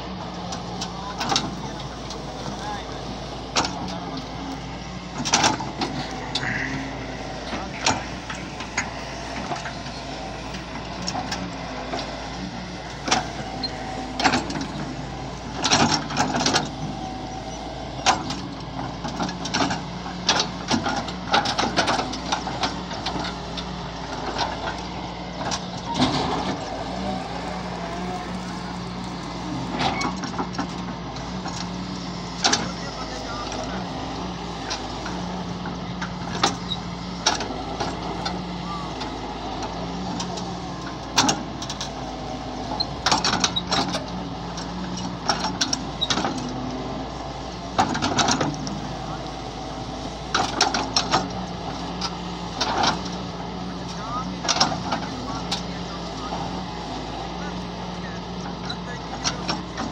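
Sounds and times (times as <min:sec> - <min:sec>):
excavator diesel engine: 0:00.0 - 0:59.9.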